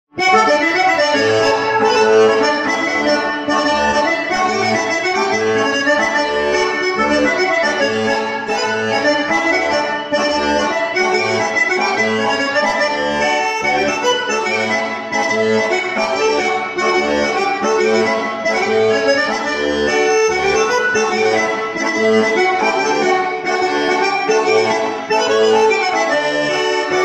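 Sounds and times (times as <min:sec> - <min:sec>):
button accordion playing polka: 0:00.1 - 0:27.0.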